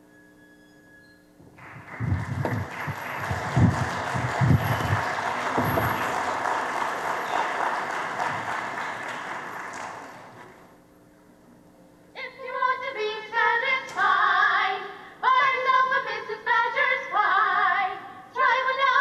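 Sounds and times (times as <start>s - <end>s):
low thumps: 1.4s - 6.3s
audience applause: 1.6s - 10.7s.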